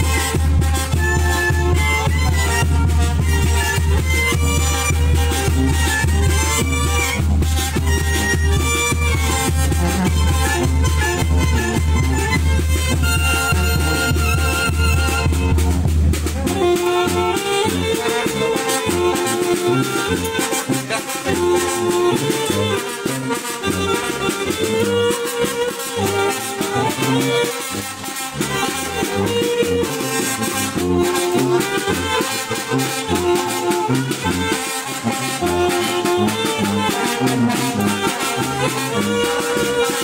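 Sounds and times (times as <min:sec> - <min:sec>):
brass band playing: 0:00.0 - 0:40.0
percussion beat: 0:00.0 - 0:40.0
sousaphone bass notes: 0:00.9 - 0:22.8.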